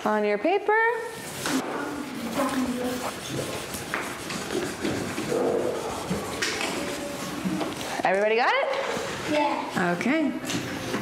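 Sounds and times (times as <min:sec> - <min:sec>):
children talking quietly: 0:01.4 - 0:03.8.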